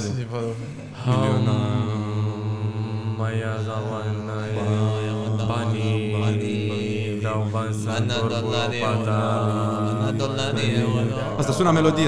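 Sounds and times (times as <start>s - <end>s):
men chanting: 0.0s - 12.0s
steady low drone: 0.0s - 12.0s.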